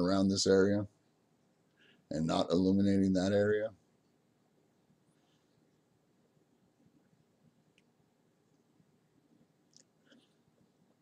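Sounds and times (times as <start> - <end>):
soft clicks: 7.0 - 8.7, 9.7 - 10.4.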